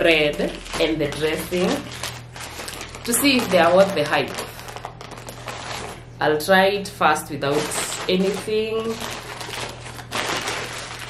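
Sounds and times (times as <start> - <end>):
plastic bag crinkling: 0.0 - 6.1, 7.3 - 11.0.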